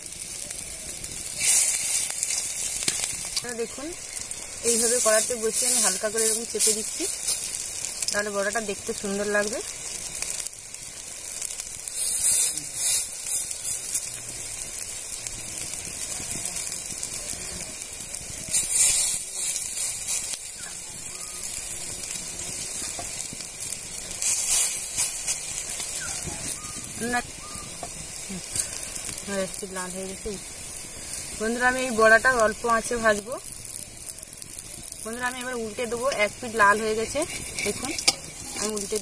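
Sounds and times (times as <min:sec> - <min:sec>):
fritters sizzling in hot oil: 0:00.0 - 0:39.0.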